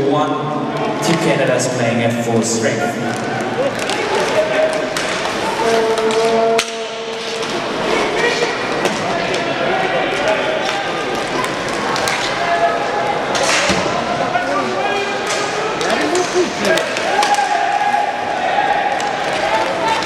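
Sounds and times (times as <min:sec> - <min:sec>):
crowd chatter in large hall: 0:00.0 - 0:20.0
sticks and puck clacking: 0:00.7 - 0:01.6, 0:03.0 - 0:20.0
players calling: 0:02.4 - 0:20.0.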